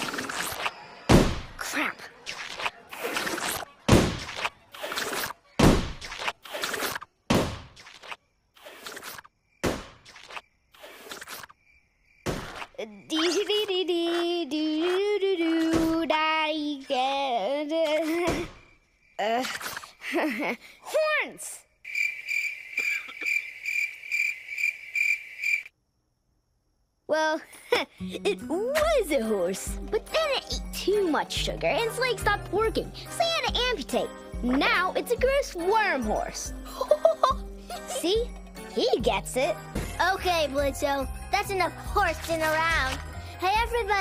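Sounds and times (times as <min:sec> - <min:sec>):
balloon rubbing squeaks: 0:02.3 - 0:05.4, 0:06.0 - 0:07.0, 0:07.7 - 0:09.3, 0:10.1 - 0:11.5
crickets chirping: 0:08.2 - 0:28.4.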